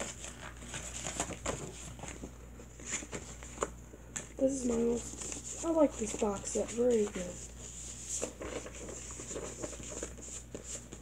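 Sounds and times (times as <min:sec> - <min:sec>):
paper rustling: 0:00.0 - 0:03.7, 0:04.5 - 0:11.0.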